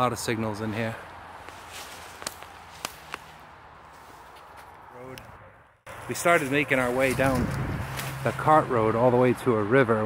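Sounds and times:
footsteps through dry leaves: 0:01.4 - 0:04.7, 0:06.1 - 0:08.4
sharp twig snaps: 0:02.2 - 0:03.3.

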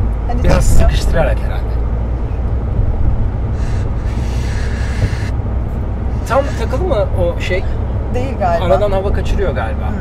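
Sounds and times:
car rumble: 0:00.0 - 0:10.0.

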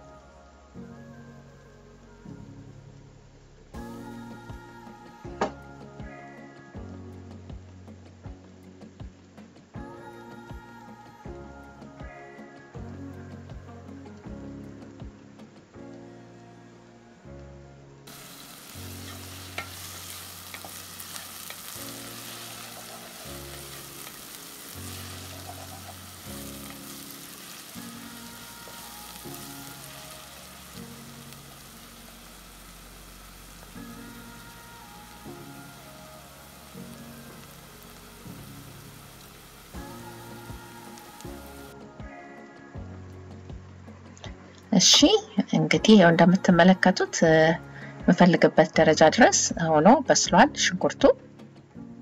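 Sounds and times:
soft background music: 0:00.0 - 0:52.0
onion sizzling in oil: 0:18.1 - 0:41.8.

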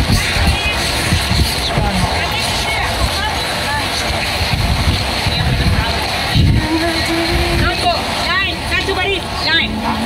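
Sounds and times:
people calling out excitedly: 0:00.0 - 0:10.0.

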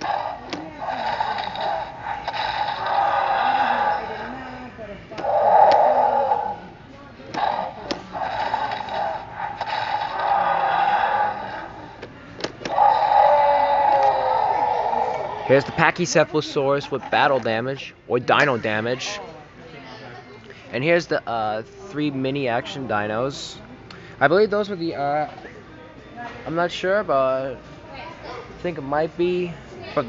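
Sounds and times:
toy electronic dinosaur roars: 0:00.0 - 0:04.4, 0:05.2 - 0:06.7, 0:07.3 - 0:11.9, 0:12.6 - 0:15.6.

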